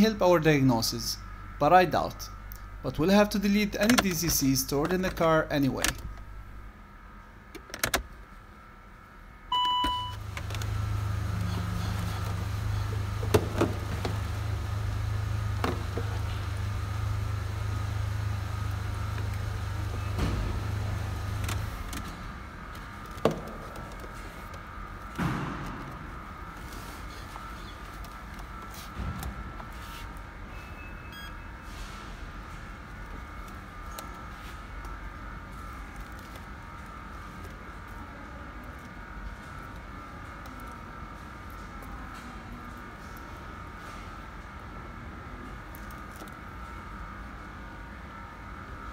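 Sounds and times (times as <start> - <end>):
car engine humming: 9.5 - 30.0
faint beeps: 30.5 - 31.6.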